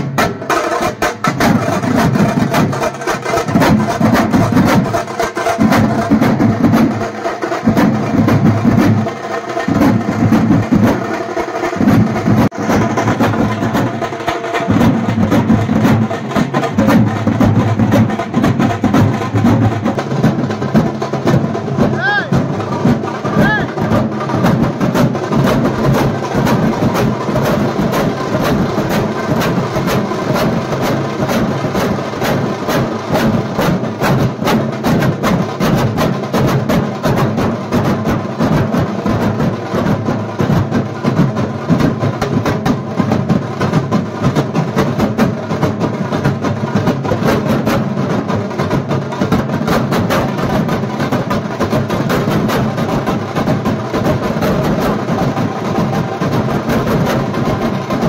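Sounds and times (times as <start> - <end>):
drum troupe playing fast rhythm: 0.0 - 58.0.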